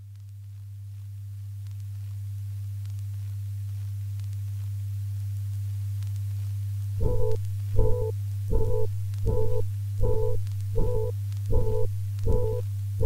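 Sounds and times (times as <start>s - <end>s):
deep synthesizer tone: 7.0s - 12.7s.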